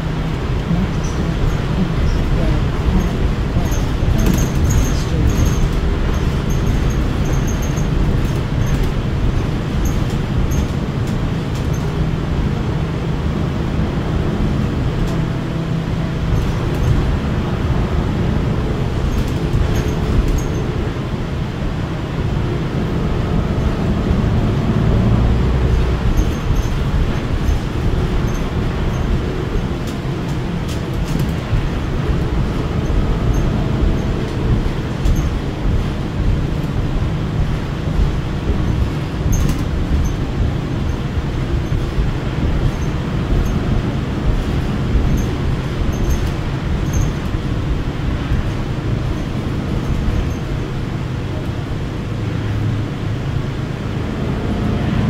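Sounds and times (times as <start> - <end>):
bus drivetrain and road rumble: 0.0 - 55.0
faint clicks and rattles: 1.0 - 12.0, 25.7 - 50.6.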